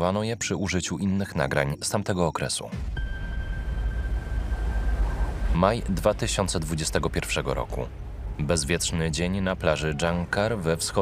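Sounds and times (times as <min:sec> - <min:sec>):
steady low rumble: 0:02.8 - 0:11.0
thin high tone: 0:03.0 - 0:06.1.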